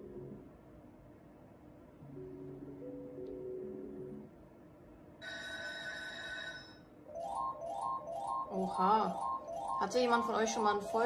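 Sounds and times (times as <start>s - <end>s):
slot machine bell-like ring: 5.2s - 11.0s.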